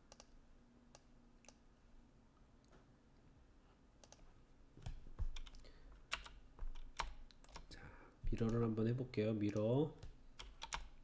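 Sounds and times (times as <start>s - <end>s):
keyboard and mouse clicking: 0.0s - 1.6s, 4.0s - 4.2s, 4.8s - 7.7s, 8.3s - 8.7s, 9.4s - 11.0s.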